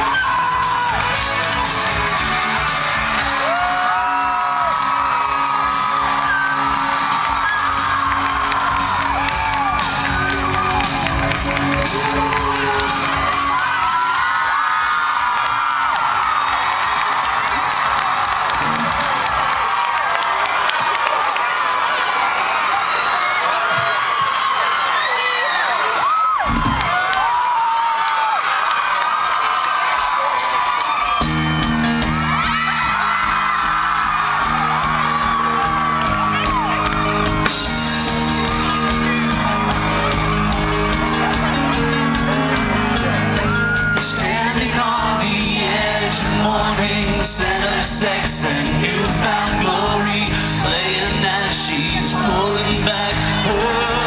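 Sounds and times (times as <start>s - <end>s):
rock band playing: 0.0s - 14.4s, 31.0s - 54.0s
crowd cheering and whooping: 0.0s - 54.0s.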